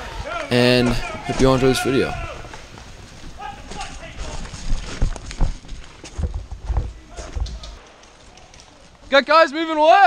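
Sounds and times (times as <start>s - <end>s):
running footsteps on gravel: 0.1s - 9.3s.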